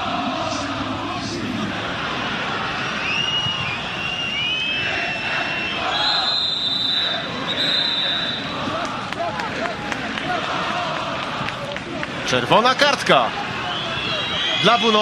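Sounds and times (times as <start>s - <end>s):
stadium crowd noise: 0.0s - 15.0s
shrill whistling: 3.0s - 8.6s, 13.7s - 15.0s
people shouting: 4.7s - 12.4s, 13.0s - 15.0s.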